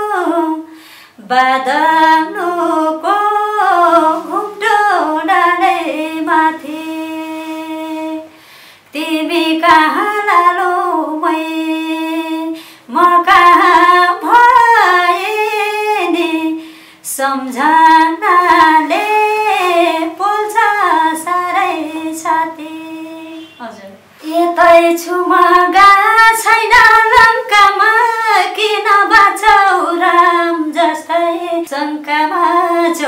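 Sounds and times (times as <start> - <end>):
woman singing unaccompanied: 0.0 - 8.3, 8.9 - 23.6, 24.2 - 33.0.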